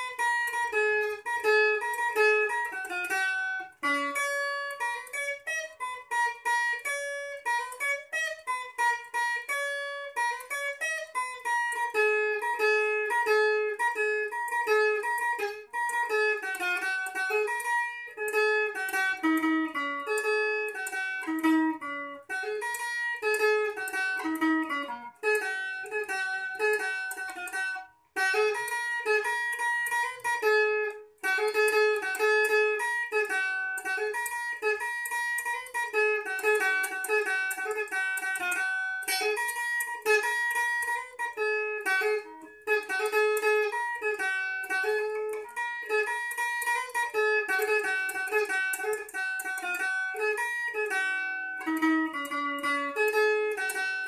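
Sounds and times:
electric guitar lead solo: 0:00.0 - 0:54.0.

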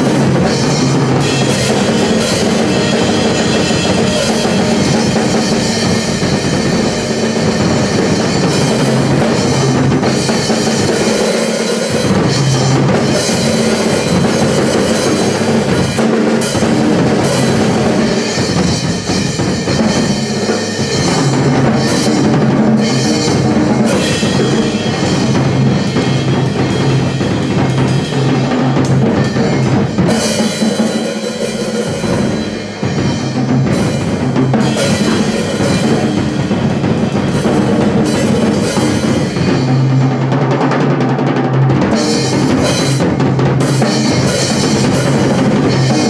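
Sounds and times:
drum kit played fast: 0:00.0 - 0:46.0.

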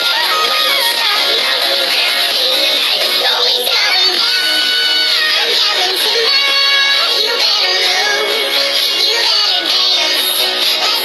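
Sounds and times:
girl singing along: 0:00.0 - 0:11.0
pop song playing loudly: 0:00.0 - 0:11.0.

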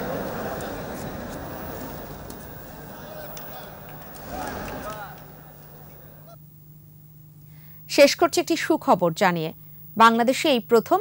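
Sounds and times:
faint low hum: 0:00.0 - 0:11.0
woman speaking: 0:07.9 - 0:11.0.

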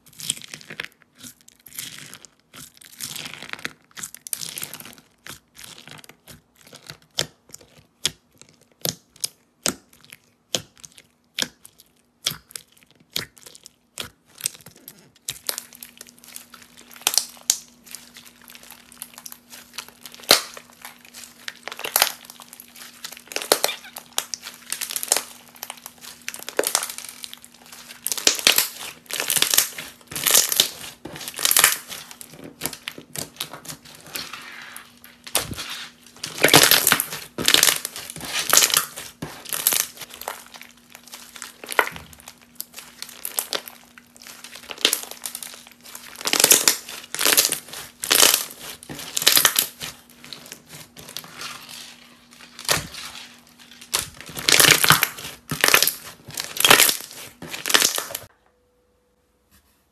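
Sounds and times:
slime crackling and crunching: 0:00.0 - 0:58.3
crunchy slime clicking and popping: 0:00.1 - 0:34.4, 0:35.0 - 0:51.7, 0:52.3 - 0:58.3.

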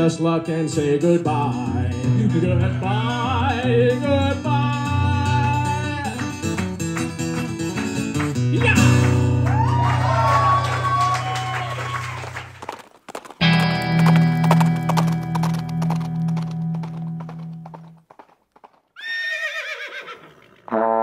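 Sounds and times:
acoustic guitar: 0:00.0 - 0:11.0, 0:13.4 - 0:18.0
horse whinny: 0:19.0 - 0:20.8.

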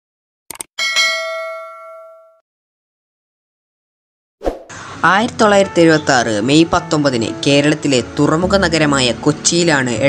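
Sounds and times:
bell ding: 0:00.8 - 0:02.4.

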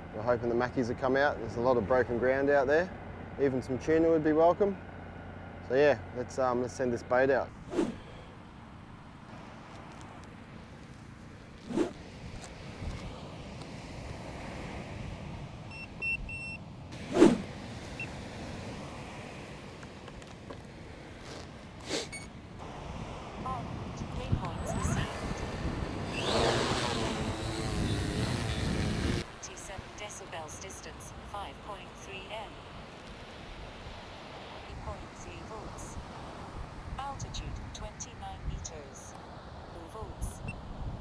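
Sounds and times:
drone motors whining: 0:24.4 - 0:29.2.

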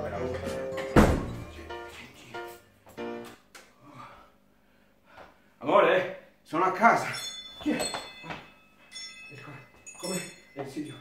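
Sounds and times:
background music with held notes: 0:00.0 - 0:03.4
door shutting with heavy thud: 0:00.9 - 0:01.4.

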